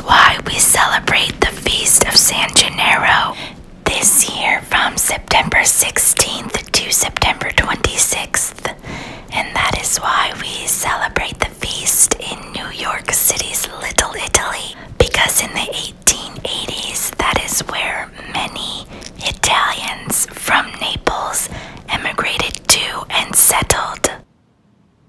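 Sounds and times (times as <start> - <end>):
person whispering: 0.0 - 24.2.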